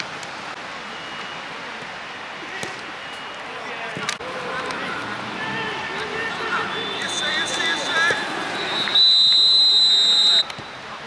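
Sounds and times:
players shouting: 0:02.0 - 0:11.0
referee's whistle blast: 0:06.5 - 0:10.9.

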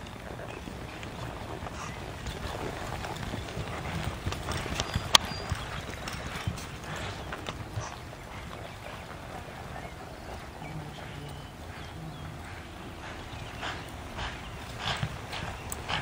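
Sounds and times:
horse hoofbeats in soft dirt: 0:00.0 - 0:16.0.

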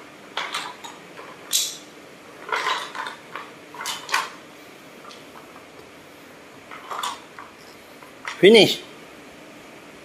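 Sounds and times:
wooden blocks clattering: 0:00.3 - 0:04.4, 0:06.7 - 0:07.6.

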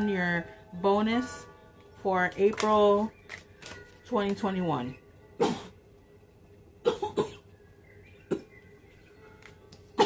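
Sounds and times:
woman coughing: 0:05.4 - 0:05.8, 0:06.8 - 0:07.5, 0:08.3 - 0:08.6.

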